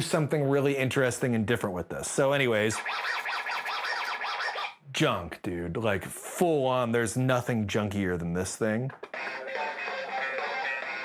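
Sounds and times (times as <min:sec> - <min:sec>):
warbling electronic toy tones: 0:02.8 - 0:04.8.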